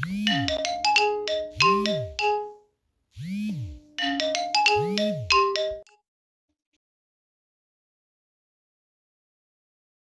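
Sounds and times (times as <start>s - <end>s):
ringtone chime melody: 0.0s - 2.7s, 3.6s - 6.0s.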